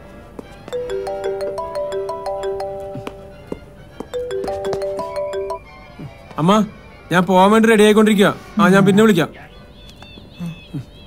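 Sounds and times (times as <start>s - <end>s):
phone ringtone: 0.7s - 5.7s.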